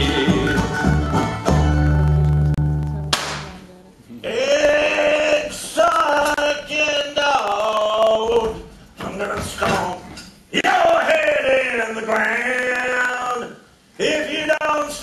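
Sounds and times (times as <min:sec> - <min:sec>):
live country band playing: 0:00.0 - 0:03.1.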